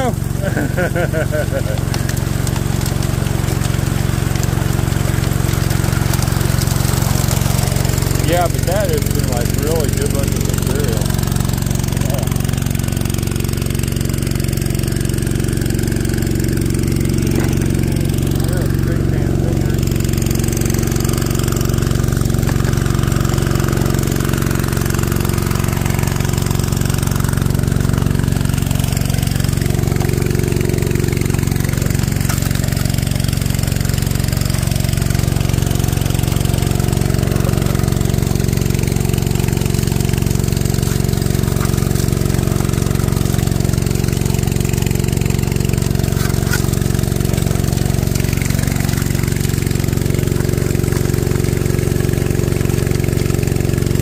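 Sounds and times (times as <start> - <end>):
small gas engine running: 0.0 - 54.0.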